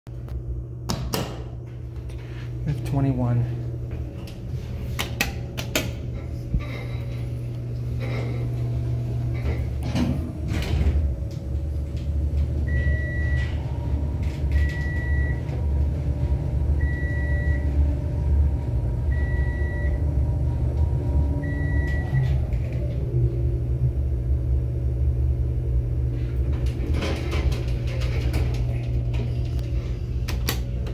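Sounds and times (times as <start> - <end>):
steady low hum: 0.1 - 30.9
elevator doors knocking and clunking: 8.2 - 23.1, 26.3 - 30.9.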